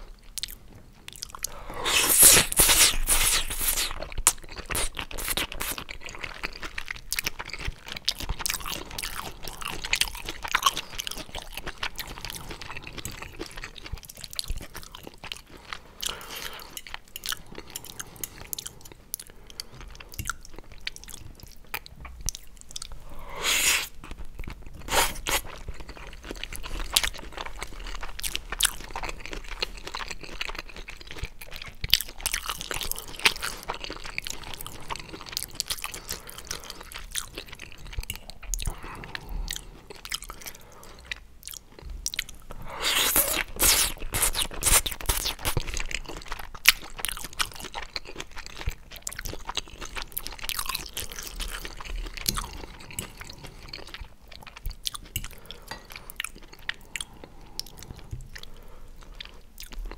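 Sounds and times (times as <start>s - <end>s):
close chewing with wet mouth sounds: 0.0s - 59.9s.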